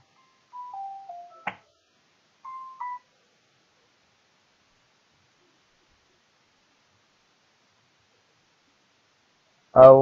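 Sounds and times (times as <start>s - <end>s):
electronic notification tones: 0.0s - 1.6s.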